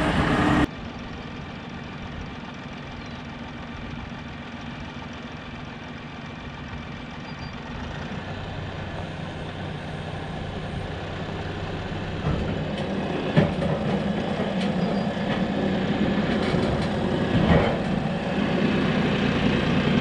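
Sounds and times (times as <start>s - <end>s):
engine idling: 0.0s - 20.0s.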